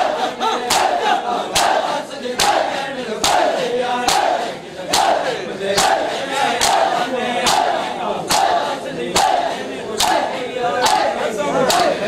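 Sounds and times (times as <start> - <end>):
crowd shouting: 0.0 - 12.0
men beating chests in unison: 0.0 - 12.0.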